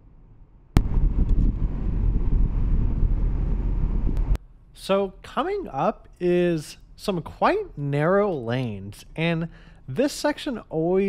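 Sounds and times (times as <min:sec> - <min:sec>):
road and wind noise in car: 0:01.1 - 0:04.4.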